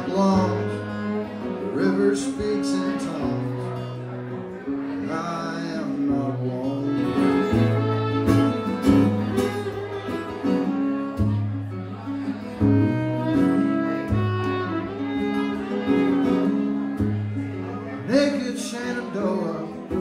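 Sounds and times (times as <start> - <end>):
acoustic guitar strumming: 0.0 - 20.0
fiddle bowing a melody: 0.0 - 20.0.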